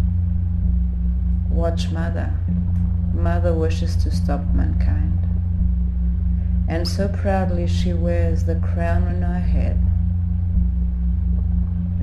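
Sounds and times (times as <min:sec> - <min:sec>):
electronic bass drone: 0:00.0 - 0:12.0.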